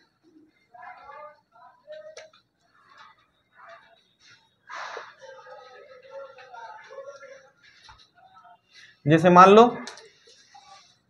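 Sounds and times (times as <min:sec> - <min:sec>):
faint voices: 0:00.0 - 0:11.0
cloth wiping whiteboard: 0:10.2 - 0:11.0.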